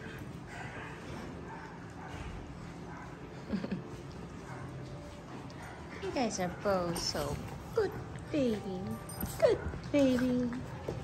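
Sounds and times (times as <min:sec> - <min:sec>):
small dogs play-wrestling: 0:00.0 - 0:11.0.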